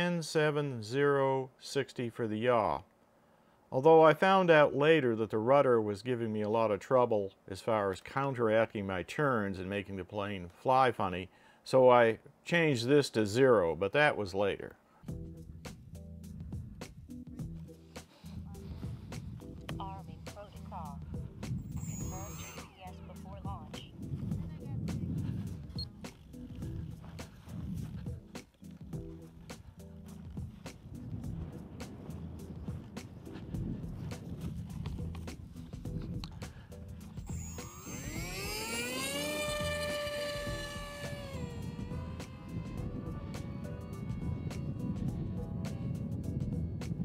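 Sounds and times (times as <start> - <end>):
electric motor and propeller whine: 21.2 - 22.8, 24.0 - 36.2, 36.8 - 47.0
low rumble with small clicks: 33.8 - 36.5.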